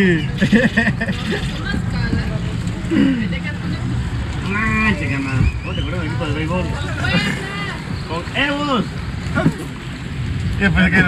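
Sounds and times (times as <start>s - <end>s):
indistinct voices talking: 0.0s - 11.0s
steady low rumble: 0.0s - 11.0s.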